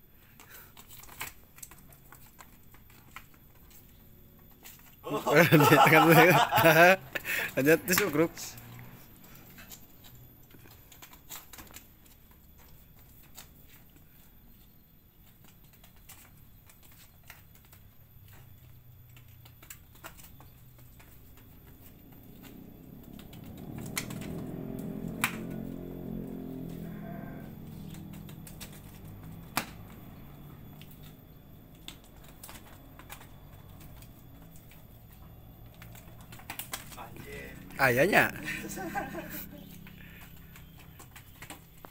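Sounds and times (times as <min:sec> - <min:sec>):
hooves on stone paving: 0:00.7 - 0:41.9.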